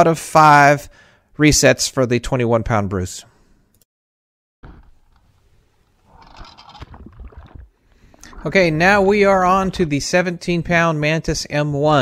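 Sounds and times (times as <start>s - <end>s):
faint water noise: 4.8s - 10.1s.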